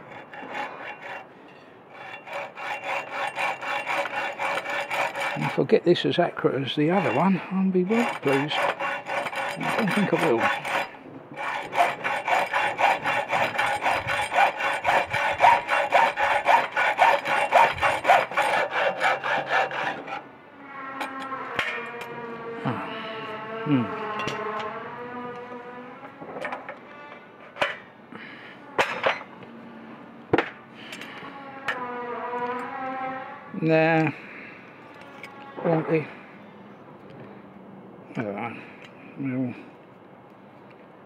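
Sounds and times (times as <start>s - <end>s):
hacksaw cutting metal tube: 0.0s - 20.2s.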